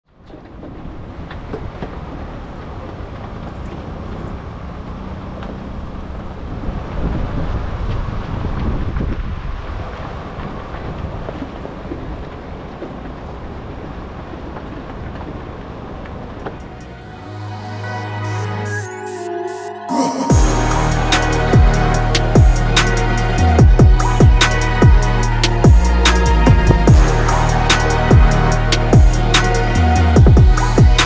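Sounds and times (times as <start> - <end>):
trailer rattles and clicks: 0.1 - 7.0
wind buffeting microphone: 5.6 - 16.8.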